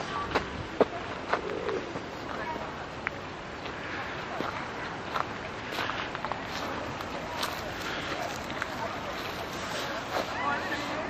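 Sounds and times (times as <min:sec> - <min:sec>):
faint voices: 0:00.0 - 0:11.0
bird cooing: 0:01.3 - 0:02.6.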